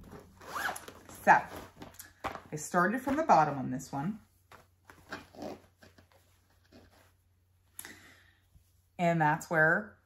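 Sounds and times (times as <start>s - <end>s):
fabric rustling: 0.0s - 7.6s.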